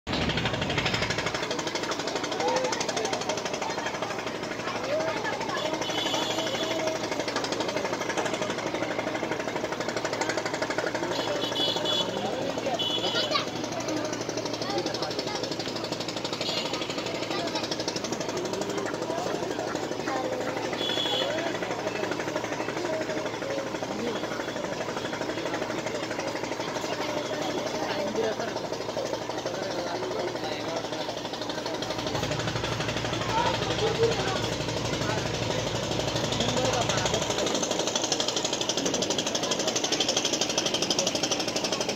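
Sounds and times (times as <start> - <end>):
boat diesel engine knocking: 0.1 - 41.9
people's voices: 0.1 - 41.9.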